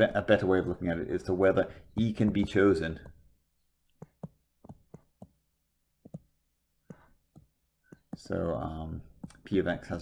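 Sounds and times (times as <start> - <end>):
stylus tapping on glass screen: 2.2 - 8.4.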